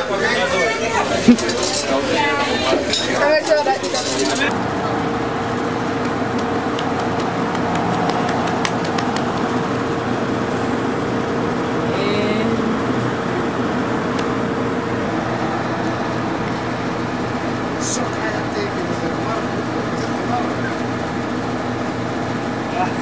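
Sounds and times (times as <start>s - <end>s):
steady hum: 0.0s - 23.0s
passing cars: 4.3s - 23.0s.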